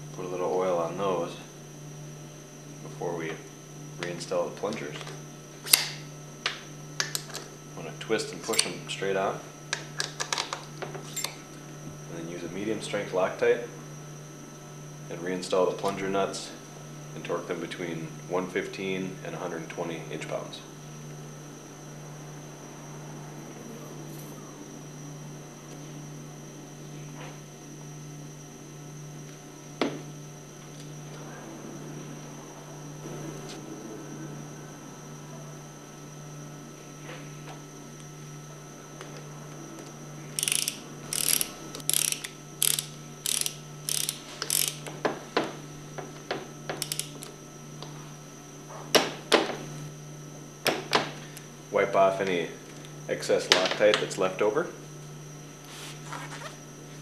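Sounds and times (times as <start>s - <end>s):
ratcheting torque wrench clicking: 40.4s - 44.9s, 46.8s - 47.3s.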